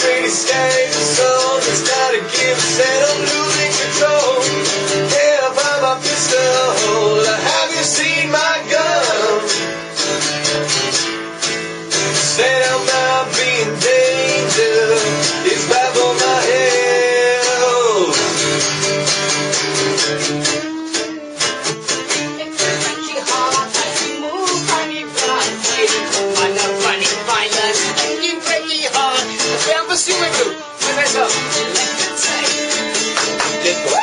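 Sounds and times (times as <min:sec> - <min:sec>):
acoustic guitar strummed fast: 0:00.0 - 0:34.0.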